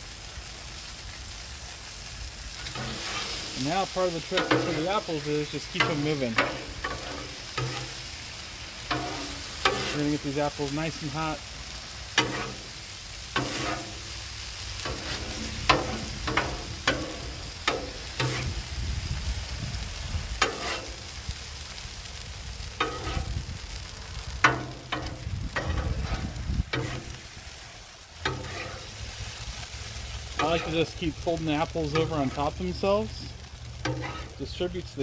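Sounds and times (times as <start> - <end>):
apples sizzling on a griddle: 0.0 - 35.0
metal spatula scraping griddle: 2.5 - 11.2, 12.1 - 14.2, 14.8 - 18.7, 20.3 - 21.2, 22.8 - 23.4, 24.4 - 27.6, 28.2 - 29.2, 30.0 - 34.7.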